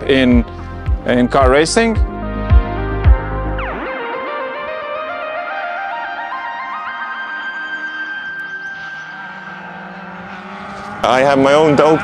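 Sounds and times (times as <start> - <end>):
held music note: 2.5 - 10.9
race car engines: 5.5 - 12.0.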